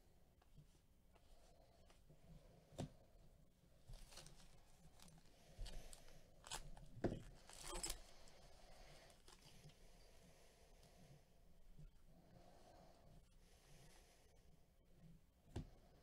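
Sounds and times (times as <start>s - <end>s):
plastic wrapper tearing and crinkling: 7.4s - 8.0s.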